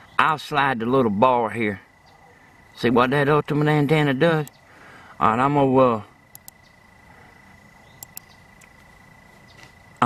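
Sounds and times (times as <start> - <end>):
computer mouse clicks: 6.3 - 6.6, 8.0 - 8.8.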